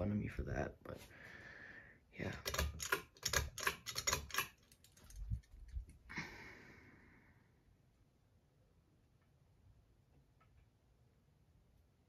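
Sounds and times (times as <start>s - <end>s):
irregular clicks and rattles: 2.3s - 6.0s.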